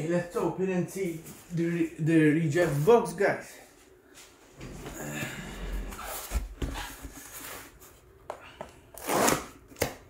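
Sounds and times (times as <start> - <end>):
cardboard flap ripping: 9.0 - 10.0.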